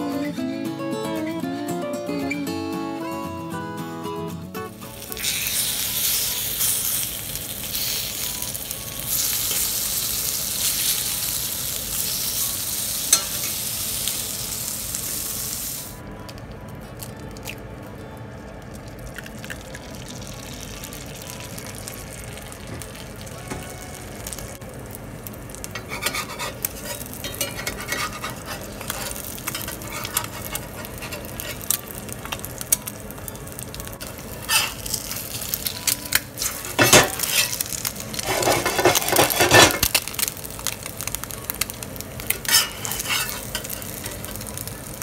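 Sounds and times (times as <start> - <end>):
bacon sizzling in a skillet: 4.8 - 16.0, 19.2 - 45.0
egg frying in fat: 4.8 - 16.0, 18.5 - 45.0
fat crackling and spattering: 24.5 - 45.0.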